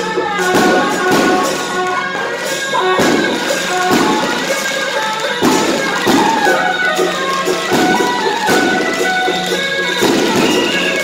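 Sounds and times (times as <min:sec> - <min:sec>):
held wind instrument melody: 0:00.0 - 0:11.0
loud percussion strikes: 0:00.0 - 0:11.0.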